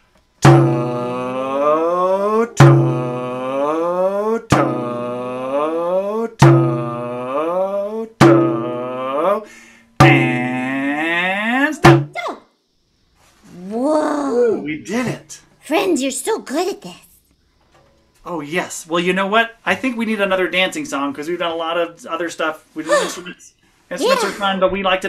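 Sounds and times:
sharp hits: 0.4s - 1.2s, 10.0s - 10.7s
man chanting long notes: 0.5s - 11.7s.

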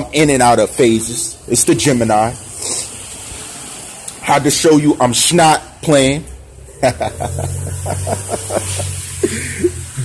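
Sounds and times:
man laughing: 6.7s - 10.0s.

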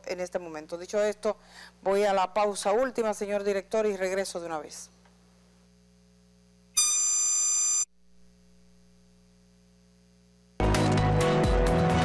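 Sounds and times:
steady electronic tone: 6.7s - 8.0s.

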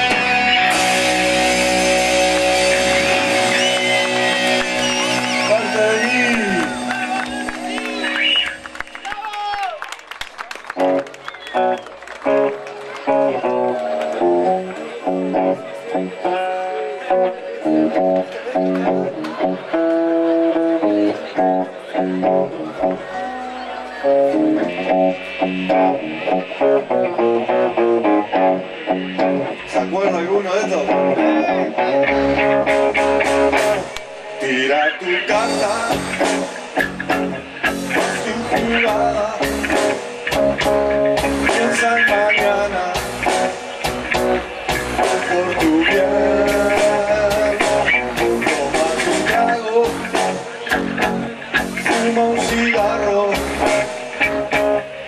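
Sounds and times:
bass line: 0.0s - 9.2s, 10.7s - 34.5s, 35.3s - 55.0s
electric guitar: 0.0s - 55.0s
drums with cymbal hits: 35.5s - 54.8s.

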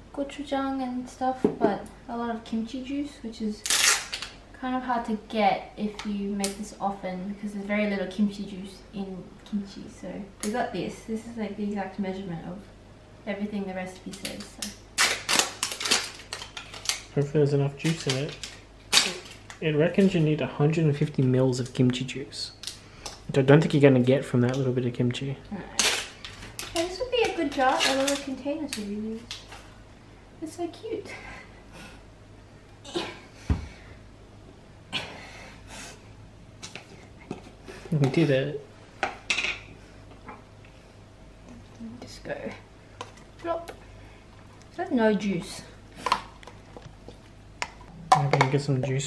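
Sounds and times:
plastic film seal peeling: 3.6s - 4.3s.

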